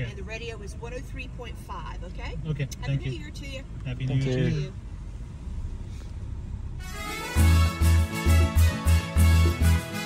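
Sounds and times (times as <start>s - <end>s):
car interior rumble: 0.0s - 9.6s
music: 6.8s - 10.0s.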